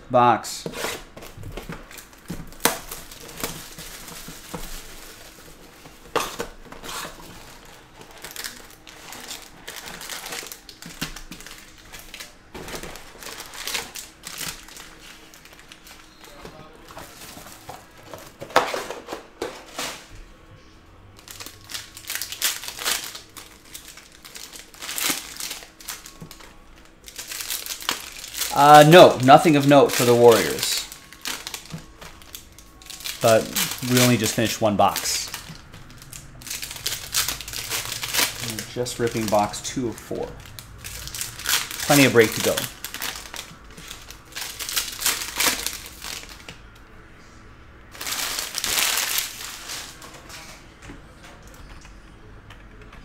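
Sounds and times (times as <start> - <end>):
plastic shrink-wrap tearing: 0.8 - 18.0, 21.2 - 46.6, 47.9 - 50.1
foil packs rustling: 0.8 - 20.2, 21.2 - 46.6, 47.9 - 50.6.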